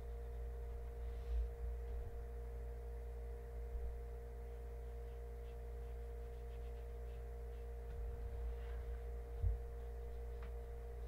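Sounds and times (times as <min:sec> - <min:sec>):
electrical hum: 0:00.0 - 0:11.0
paintbrush strokes on paper: 0:04.4 - 0:11.0.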